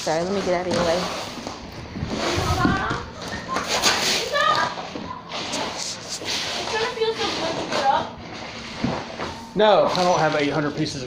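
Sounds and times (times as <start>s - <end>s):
children chattering: 2.2s - 5.8s.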